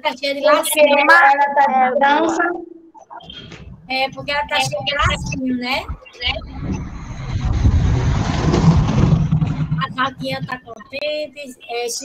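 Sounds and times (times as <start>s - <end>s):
low rumble: 3.2s - 10.9s.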